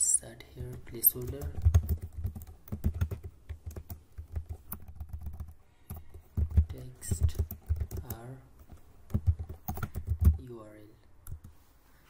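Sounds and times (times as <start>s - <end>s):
typing on computer keyboard: 0.6s - 10.4s.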